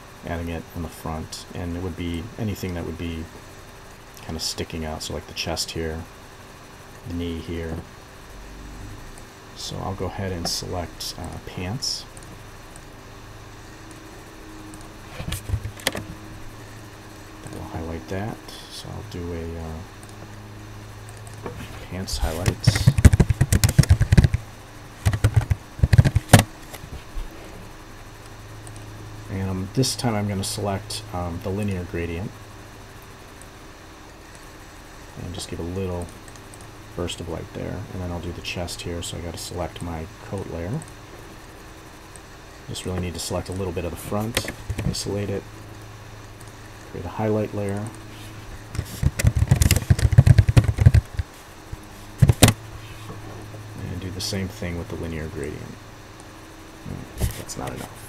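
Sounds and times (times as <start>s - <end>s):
steady low hum: 0.0s - 58.0s
computer keyboard typing: 22.2s - 26.5s, 48.8s - 51.3s, 52.2s - 52.6s.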